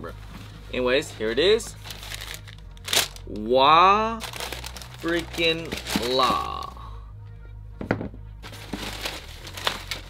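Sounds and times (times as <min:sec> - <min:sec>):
background music: 0:00.0 - 0:10.0
tissue paper crinkling: 0:01.7 - 0:03.2, 0:04.2 - 0:06.4, 0:08.4 - 0:10.0.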